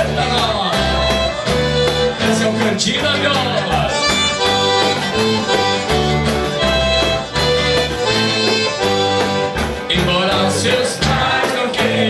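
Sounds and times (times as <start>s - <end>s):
accordion melody: 0.0s - 12.0s
acoustic guitar: 0.0s - 12.0s
electric bass: 0.0s - 12.0s.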